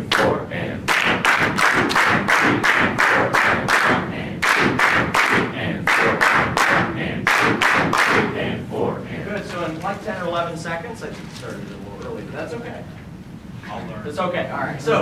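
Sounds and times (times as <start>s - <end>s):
group clapping a rhythm: 0.0s - 8.5s
people counting aloud in unison: 0.0s - 9.5s.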